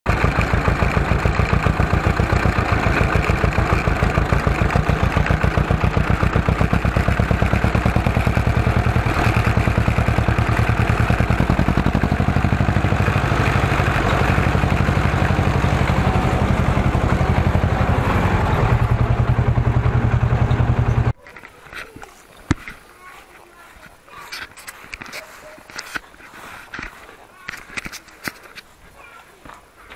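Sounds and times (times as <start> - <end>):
tractor diesel engine chugging: 0.1 - 21.2.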